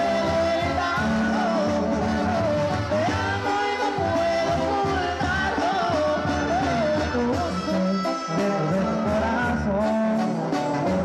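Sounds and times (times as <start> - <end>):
brass band music with tuba and drums: 0.0 - 11.0
person singing: 0.0 - 11.0.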